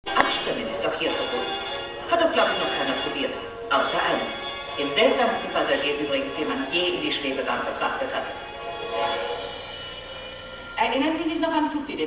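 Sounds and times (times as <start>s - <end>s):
film music over loudspeakers: 0.0s - 12.0s
speech over loudspeakers: 0.1s - 8.4s.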